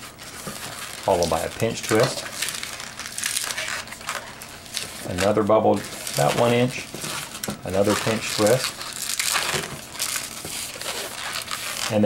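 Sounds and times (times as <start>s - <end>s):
rubber balloon creaking: 0.0s - 12.0s.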